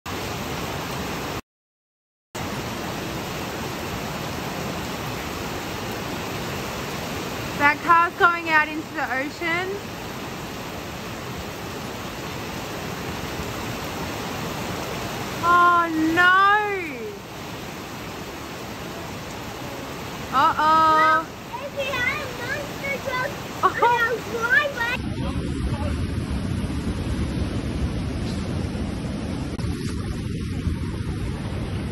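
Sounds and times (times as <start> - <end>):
heavy rain: 0.1 - 1.4, 2.4 - 31.9.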